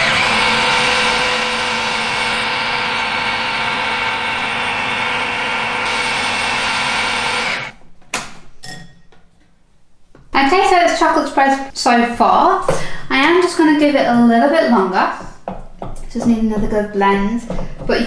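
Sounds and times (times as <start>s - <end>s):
food processor motor whining: 0.0s - 7.7s.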